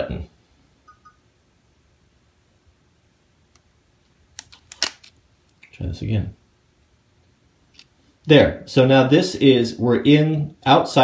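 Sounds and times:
camera buttons clicking: 4.4s - 5.1s.

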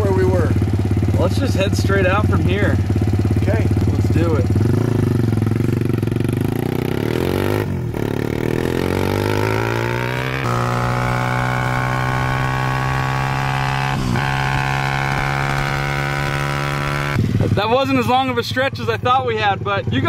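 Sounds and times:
motorbike engine at full throttle: 0.0s - 20.0s
wind noise: 13.9s - 17.8s.

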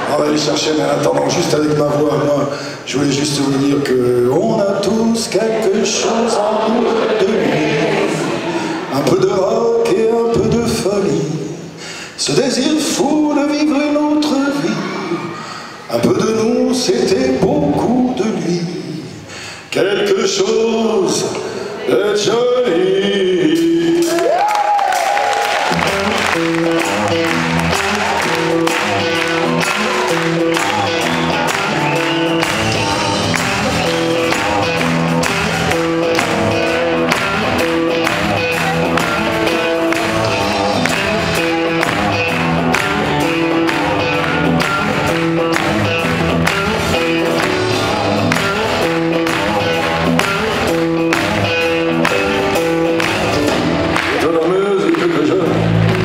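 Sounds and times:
audience applause: 5.3s - 9.4s, 24.0s - 56.0s
live rock band playing: 24.9s - 56.0s.

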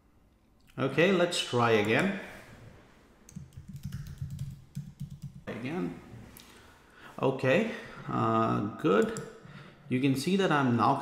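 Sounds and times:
keyboard typing: 3.3s - 5.5s, 9.0s - 9.4s.

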